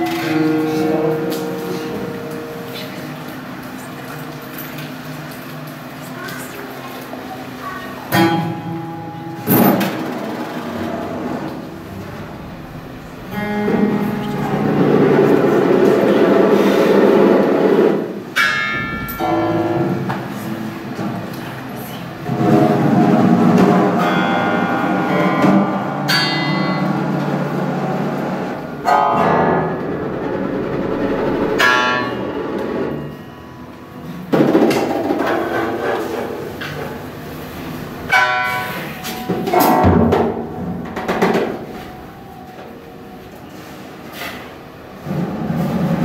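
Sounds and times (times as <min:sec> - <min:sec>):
ringing metallic strike: 0:08.1 - 0:17.2, 0:18.0 - 0:21.3, 0:22.2 - 0:34.3, 0:38.1 - 0:40.4
drum roll: 0:08.1 - 0:21.3, 0:22.2 - 0:33.2, 0:34.2 - 0:37.1, 0:39.1 - 0:42.2, 0:45.0 - 0:46.0
soft playing: 0:08.2 - 0:18.2
bell-like metallic note ringing: 0:24.0 - 0:27.7.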